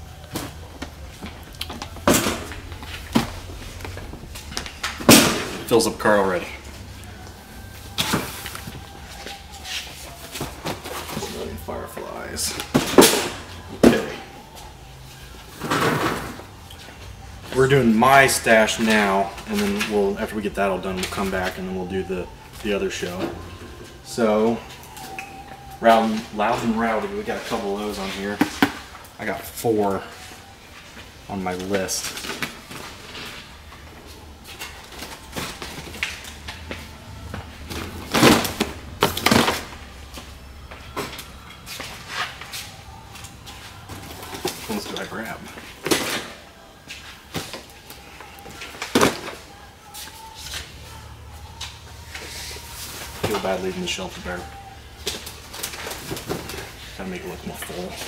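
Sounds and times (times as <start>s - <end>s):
boxes knocking and rattling: 0.2s - 6.5s, 7.9s - 14.3s, 24.4s - 29.0s, 34.6s - 40.0s, 43.5s - 46.4s, 47.2s - 49.5s, 52.8s - 58.0s
boxes thumping into wire cart: 2.0s - 3.4s, 4.8s - 5.8s, 12.6s - 14.2s, 37.7s - 39.8s, 48.6s - 49.5s
box thumping into cart: 4.8s - 5.7s, 37.7s - 39.8s.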